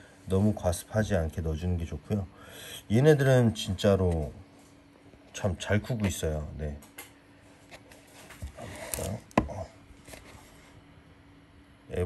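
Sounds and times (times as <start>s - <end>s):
faint handling noises: 3.8s - 10.9s.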